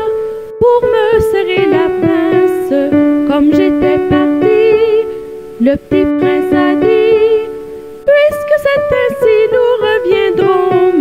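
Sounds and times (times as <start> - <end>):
keyboard accompaniment: 0.0 - 11.0
person singing children's song: 0.0 - 11.0.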